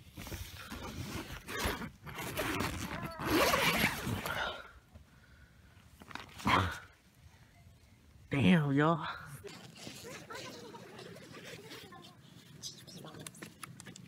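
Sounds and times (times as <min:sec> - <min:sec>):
nylon fabric rustling: 0:00.0 - 0:04.3, 0:09.3 - 0:12.6
tent zipper being pulled: 0:00.0 - 0:04.4, 0:09.3 - 0:13.1.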